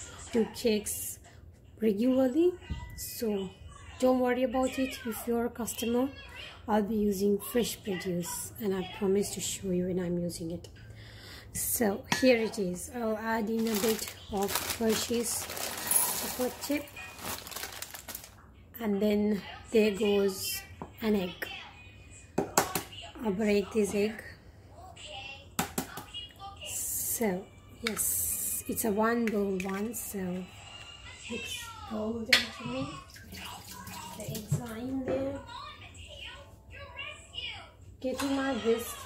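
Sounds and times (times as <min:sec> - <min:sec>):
person speaking: 0:13.0 - 0:17.8
plastic packet crinkling: 0:13.4 - 0:18.4
water running: 0:32.4 - 0:35.0.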